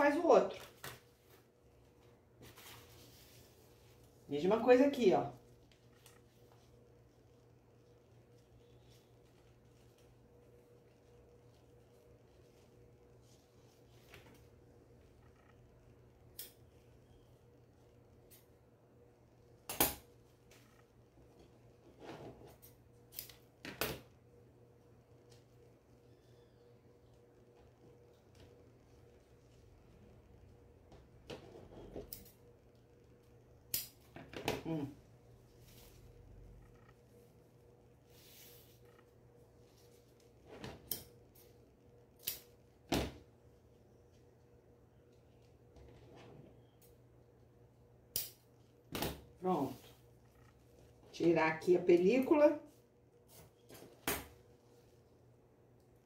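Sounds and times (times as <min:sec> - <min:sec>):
steady low hum: 0:00.0 - 0:56.0
soft paper rustle: 0:00.5 - 0:04.2
scissors click: 0:48.1 - 0:48.4.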